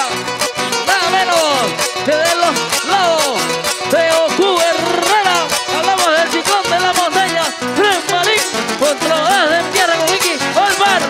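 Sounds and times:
acoustic guitars strumming: 0.0s - 11.0s
wordless sliding vocal melody: 0.0s - 11.0s.

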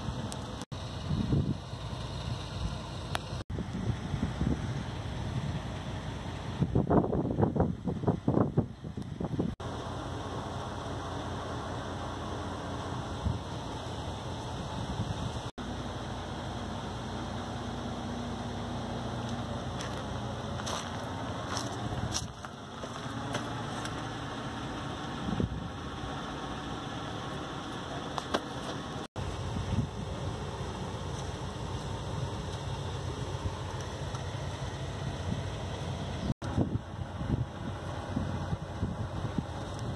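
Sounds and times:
wind buffeting microphone: 0.9s - 1.7s, 3.5s - 9.6s, 25.2s - 25.9s, 35.2s - 39.9s.

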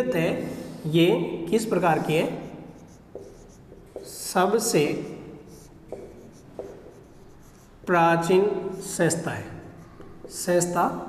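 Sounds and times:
marker writing on whiteboard: 1.6s - 11.0s.

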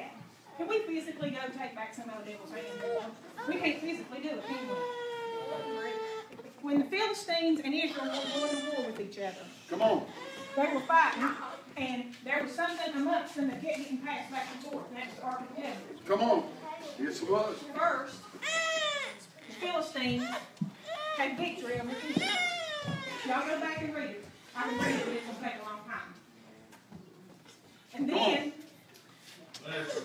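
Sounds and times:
woman preaching into microphone: 0.0s - 5.1s, 6.6s - 9.6s, 10.4s - 15.8s, 19.4s - 26.1s
woman's voice through microphone: 19.4s - 20.4s, 21.2s - 26.2s.

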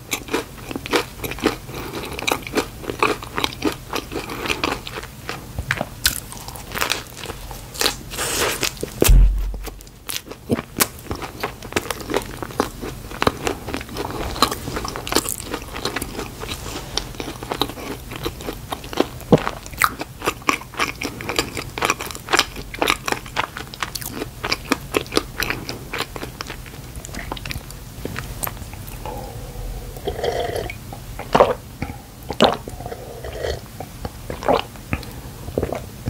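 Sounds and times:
chewing with mouth clicks: 0.1s - 9.0s, 10.1s - 35.9s.

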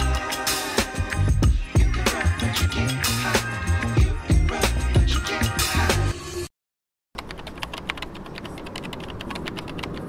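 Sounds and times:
music: 0.0s - 6.5s
keyboard typing clicks: 7.2s - 10.0s
moving car noise: 7.2s - 10.0s.

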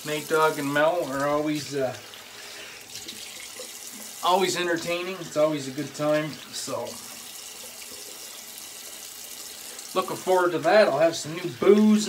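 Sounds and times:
tap water running into sink: 0.0s - 12.0s.

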